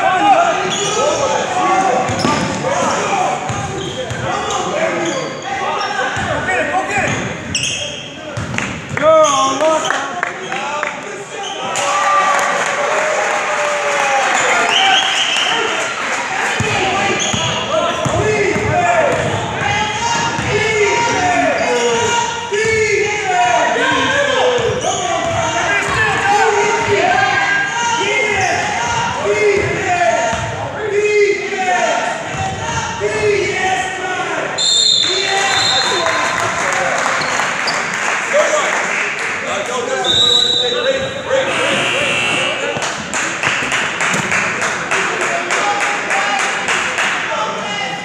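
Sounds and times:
crowd chatter: 0:00.0 - 0:48.0.

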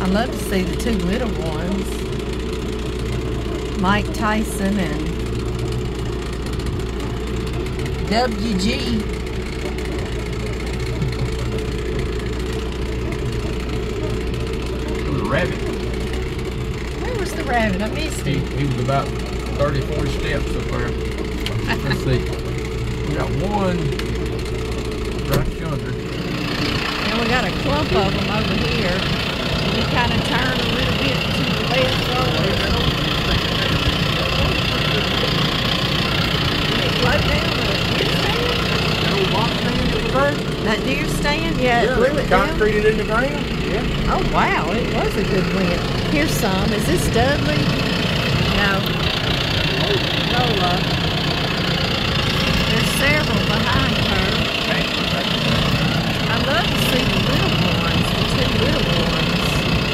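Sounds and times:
vehicle engine droning: 0:00.0 - 0:59.9.

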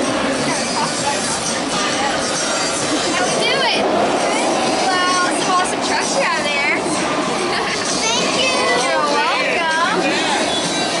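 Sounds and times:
amusement park noise: 0:00.0 - 0:11.0
child's high voice: 0:08.0 - 0:09.5.

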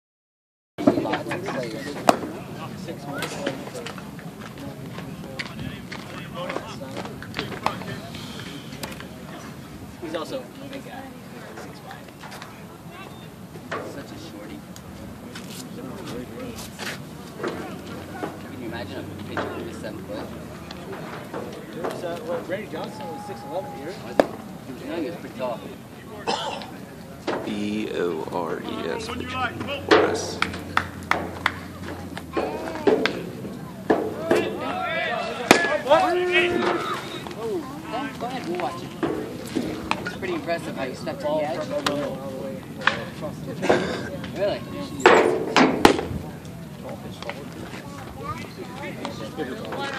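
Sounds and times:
people talking: 0:00.8 - 0:45.4
faint voices: 0:00.8 - 0:49.9
baseball bat crack: 0:24.1 - 0:24.5, 0:29.9 - 0:34.6, 0:35.4 - 0:35.9, 0:45.2 - 0:46.2
man speaking: 0:27.5 - 0:30.6.

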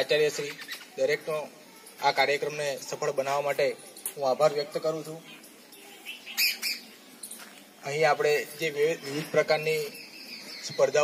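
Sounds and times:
bird calling: 0:05.2 - 0:07.5, 0:08.7 - 0:11.0.

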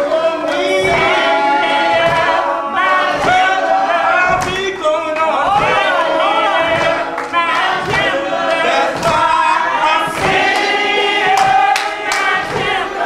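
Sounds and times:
congregation singing gospel: 0:00.0 - 0:13.0
hand claps: 0:00.0 - 0:13.0.

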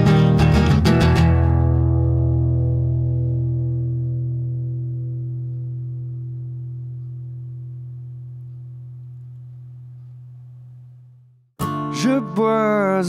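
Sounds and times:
low guitar note ringing: 0:01.9 - 0:11.5.

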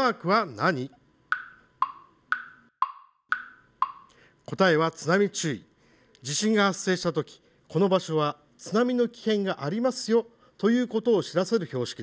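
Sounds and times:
wood-block tick-tock: 0:01.3 - 0:04.2.

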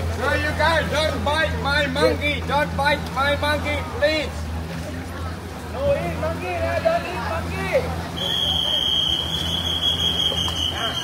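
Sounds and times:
faint voices: 0:00.0 - 0:11.0.

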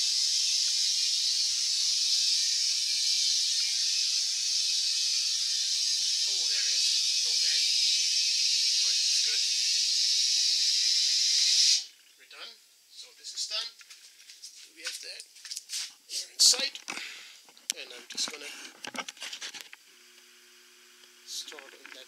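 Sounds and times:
gas hissing through regulator: 0:00.0 - 0:12.0.

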